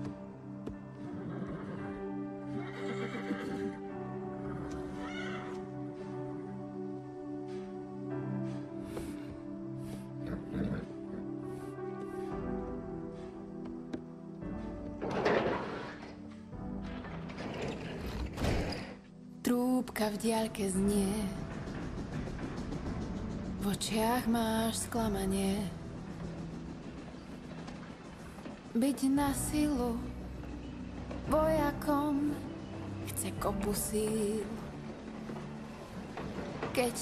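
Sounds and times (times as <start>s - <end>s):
soft film score music: 0.0s - 37.0s
horses nickering and whinnying: 1.0s - 5.7s, 8.9s - 11.8s
wooden boards creaking and clicking: 14.8s - 19.1s, 21.4s - 23.6s, 34.8s - 37.0s.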